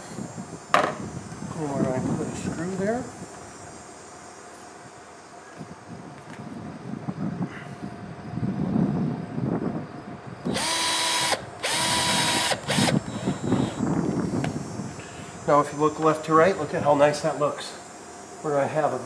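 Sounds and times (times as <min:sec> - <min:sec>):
cordless drill motor whine: 0:10.4 - 0:14.6.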